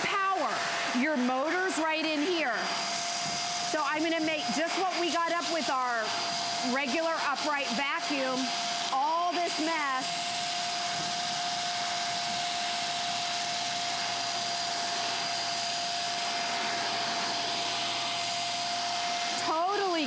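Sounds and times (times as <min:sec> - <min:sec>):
vacuum cleaner running: 0:00.0 - 0:20.0.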